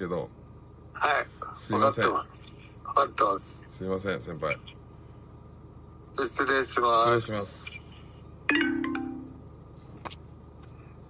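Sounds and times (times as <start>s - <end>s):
electronic phone chime: 8.5s - 9.4s.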